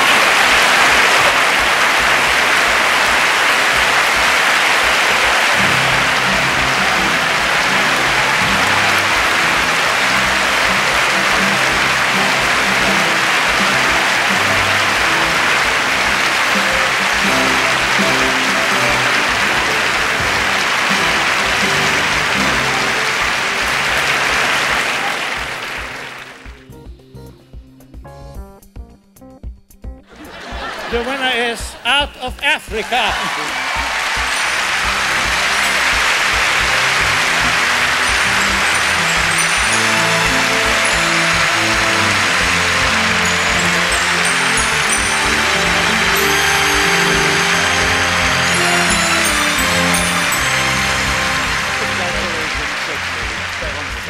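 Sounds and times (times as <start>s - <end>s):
audience applauding: 0.0s - 26.7s, 30.1s - 54.0s
music: 0.0s - 54.0s.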